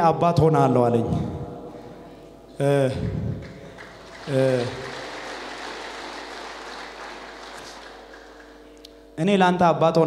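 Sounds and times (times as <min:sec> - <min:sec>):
congregation clapping: 0:03.3 - 0:09.0.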